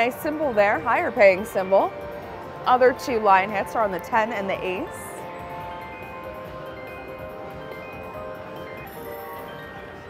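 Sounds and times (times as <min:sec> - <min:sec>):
slot machine chiming tones: 0:04.8 - 0:10.0.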